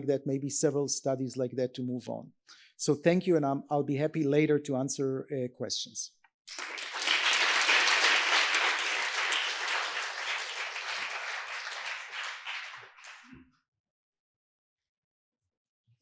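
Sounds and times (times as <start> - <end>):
audience applauding: 6.5 - 13.4.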